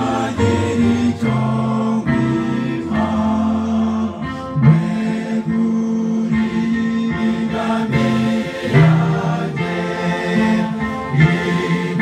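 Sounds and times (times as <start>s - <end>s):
congregation singing a hymn: 0.0s - 12.0s.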